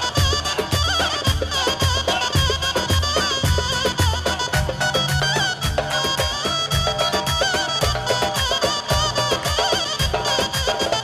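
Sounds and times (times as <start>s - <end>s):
fast drum beat: 0.0s - 11.0s
reedy wind instrument melody: 0.0s - 11.0s.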